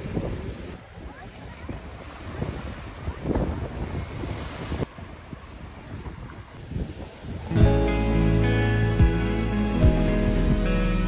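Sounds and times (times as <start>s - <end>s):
waves breaking on pebbly shore: 0.0s - 7.6s
wind buffeting microphone: 0.0s - 10.9s.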